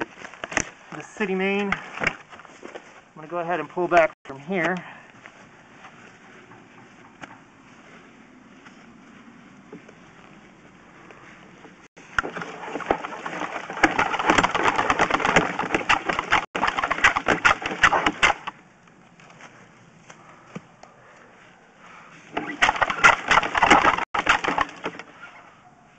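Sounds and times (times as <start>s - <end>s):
cable clicking and rattling: 12.1s - 18.5s.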